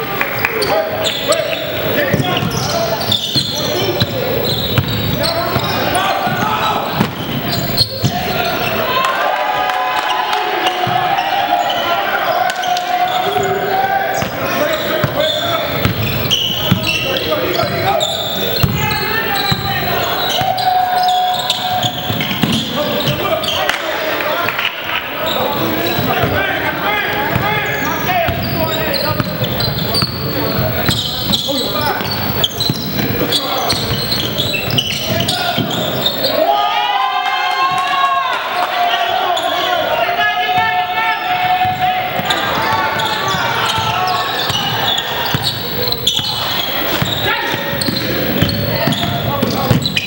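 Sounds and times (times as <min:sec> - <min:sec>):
basketball bouncing on court: 0:01.8 - 0:08.4, 0:14.2 - 0:20.6, 0:21.4 - 0:23.4, 0:25.8 - 0:26.4, 0:27.2 - 0:36.2, 0:41.4 - 0:50.0.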